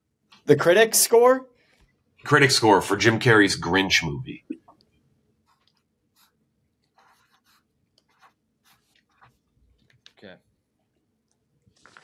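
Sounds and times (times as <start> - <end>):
pen scribbling on paper: 5.5 - 9.4.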